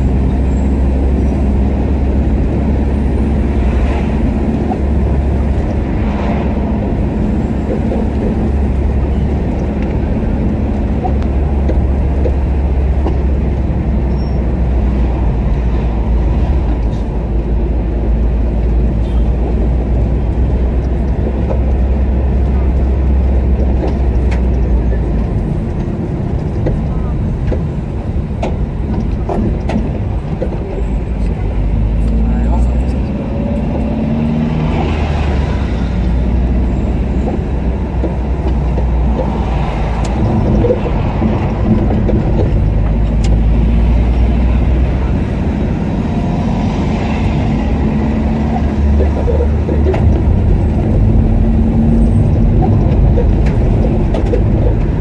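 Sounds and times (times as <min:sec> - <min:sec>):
car engine and road rumble: 0:00.0 - 0:55.0.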